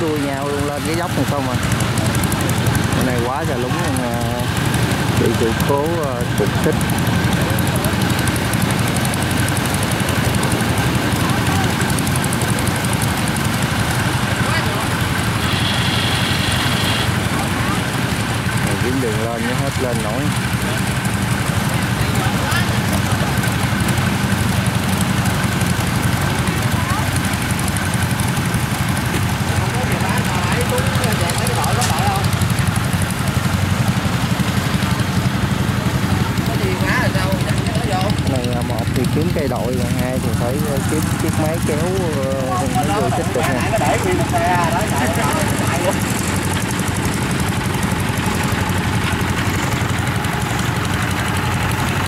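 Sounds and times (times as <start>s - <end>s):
diesel engine droning: 0.0s - 52.0s
people calling: 0.0s - 52.0s.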